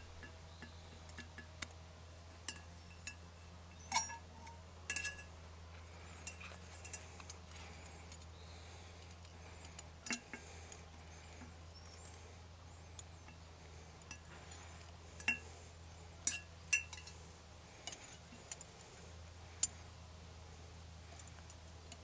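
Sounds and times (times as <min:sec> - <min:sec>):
glass jar clinking: 0:02.5 - 0:05.3.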